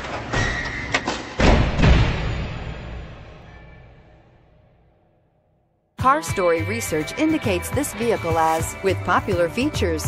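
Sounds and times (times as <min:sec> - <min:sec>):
deep cinematic thuds and hits: 0:01.4 - 0:03.6
background music: 0:06.0 - 0:10.0.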